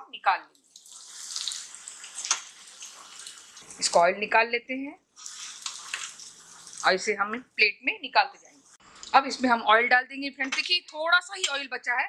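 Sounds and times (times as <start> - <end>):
food sizzling in oil: 0.7 - 4.0, 5.2 - 7.1.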